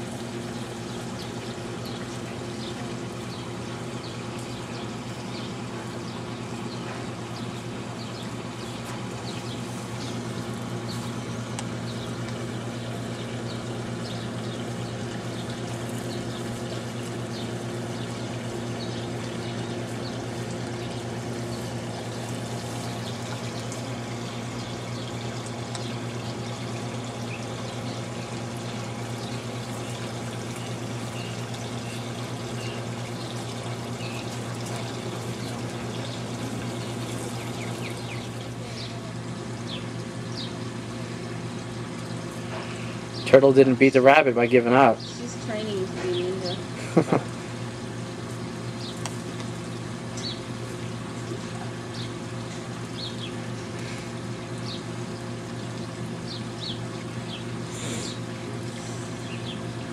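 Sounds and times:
low mechanical hum: 0.0s - 59.9s.

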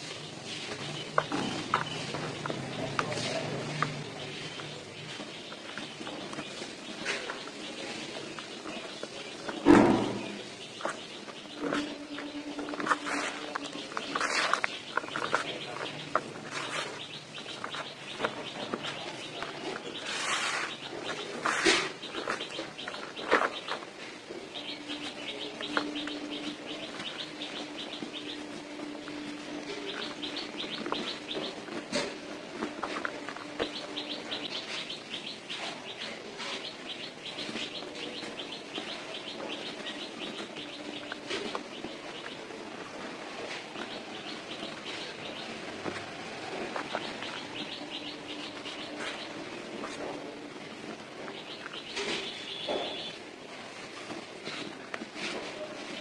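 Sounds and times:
birds chirping: 0.0s - 56.0s.

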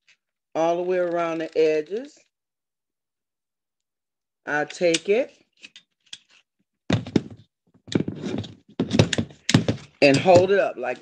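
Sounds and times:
handling noise close to microphone: 5.1s - 10.7s
dull knocks and rubbing: 6.9s - 10.6s.

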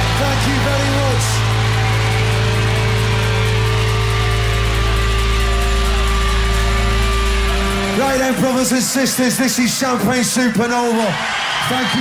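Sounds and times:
rock band holding distorted chord: 0.0s - 10.0s.

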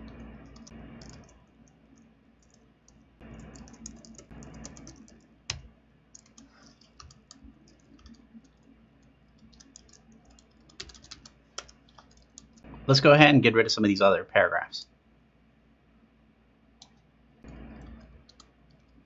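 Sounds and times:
computer keyboard typing: 0.0s - 12.7s, 16.8s - 19.0s.

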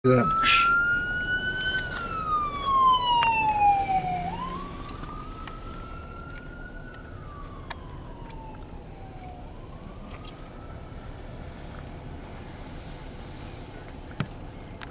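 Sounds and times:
police siren wailing: 0.1s - 12.5s.

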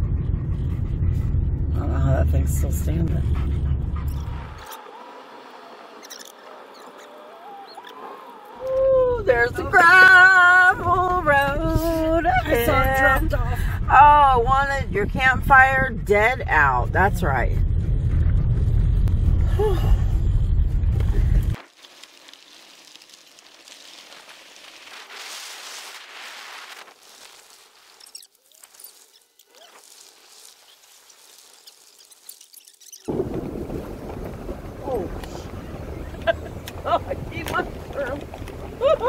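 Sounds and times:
car rumbling on gravel road: 0.0s - 39.0s
faint hiss: 21.2s - 33.1s.

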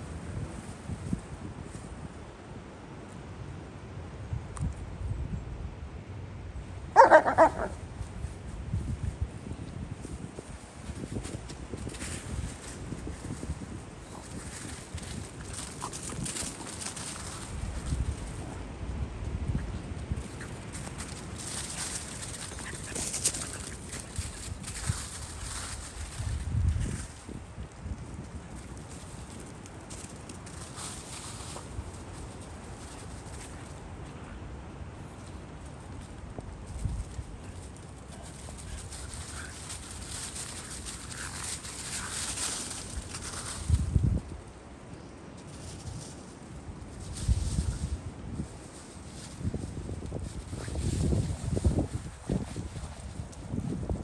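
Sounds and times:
paws running through dry leaves: 7.0s - 44.5s, 45.3s - 54.0s.

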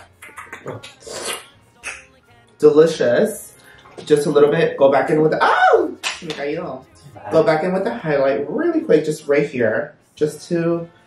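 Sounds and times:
person making animal-like sounds: 0.0s - 2.2s.

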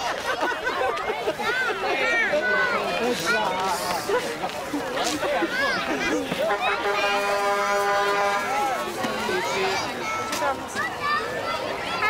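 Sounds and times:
voices: 0.0s - 12.0s
vehicle horn long blast: 6.5s - 8.8s.

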